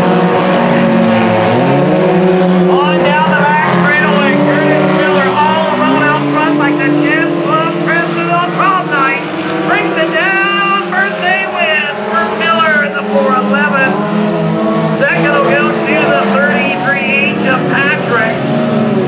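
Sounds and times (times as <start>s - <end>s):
race car engines revving: 0.0s - 19.0s.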